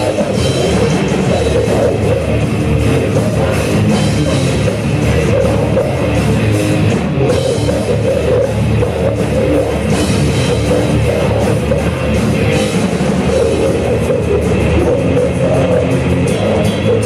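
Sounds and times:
drum kit pounding: 0.0s - 17.0s
electric guitars: 0.0s - 17.0s
metal band playing live: 0.0s - 17.0s.

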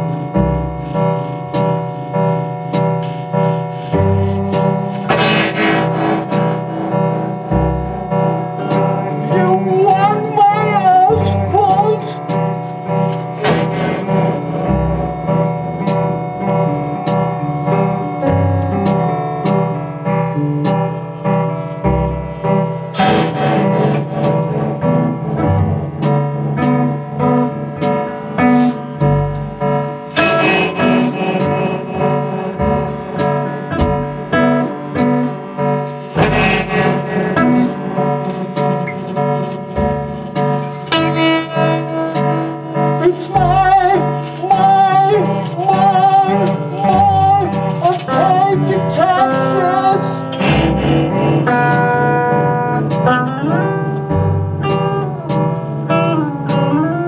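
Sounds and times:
steady beat of sharp hits: 0.0s - 19.8s, 21.8s - 56.8s
amplified electric guitars: 0.0s - 57.0s.

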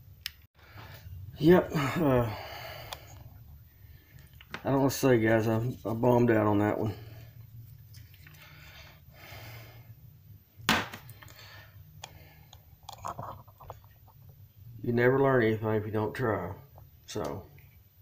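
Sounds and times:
steady low hum: 0.0s - 18.0s
soft rubbing: 4.0s - 8.4s.

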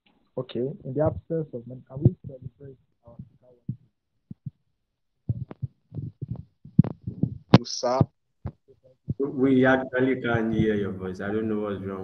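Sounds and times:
broken-up speech over video call: 0.4s - 4.5s, 5.3s - 12.0s.

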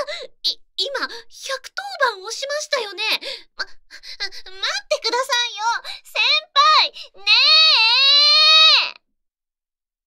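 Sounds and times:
woman's high-pitched cry: 6.2s - 9.0s.

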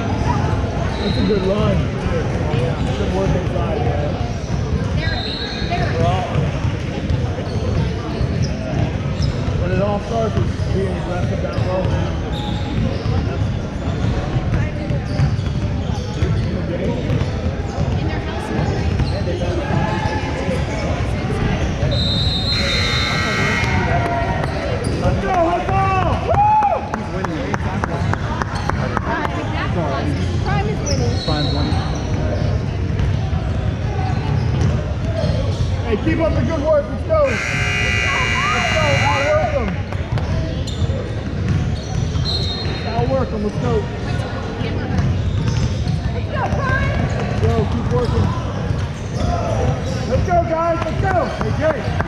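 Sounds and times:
voices echoing in a hall: 0.0s - 52.0s
basketballs bouncing on hardwood floor: 13.9s - 18.0s, 41.2s - 42.3s, 44.9s - 48.9s.

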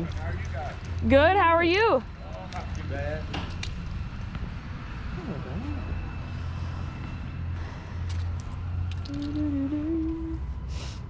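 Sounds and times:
low engine drone: 3.8s - 11.0s.

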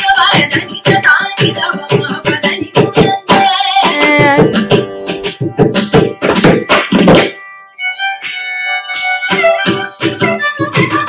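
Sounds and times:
mridangam strokes: 0.9s - 11.0s.

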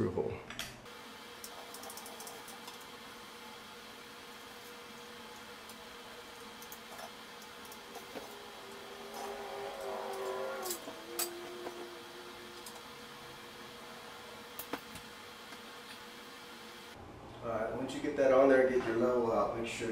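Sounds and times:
squeaky whine: 7.5s - 14.6s.

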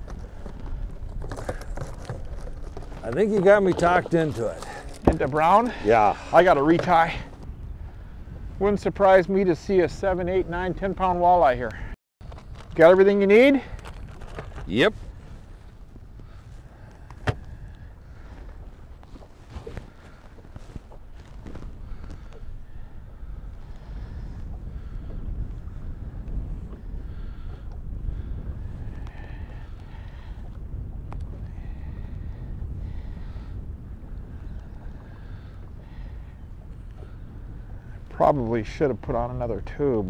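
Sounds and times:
water against boat: 0.0s - 40.0s
wind on microphone: 0.0s - 40.0s.

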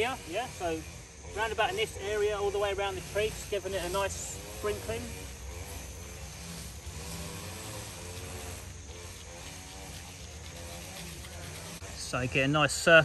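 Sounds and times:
brush cutter engines revving: 0.0s - 13.0s.

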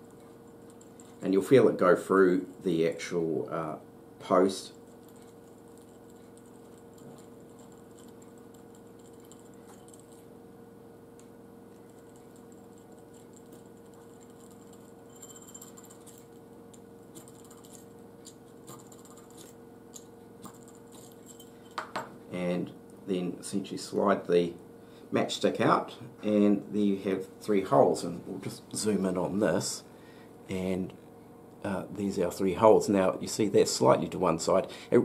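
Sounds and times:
steady low hum: 0.0s - 35.0s.

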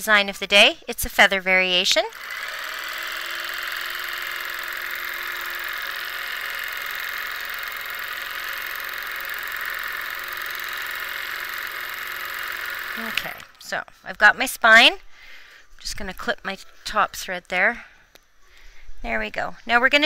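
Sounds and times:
quilting machine whirring: 1.1s - 13.7s.

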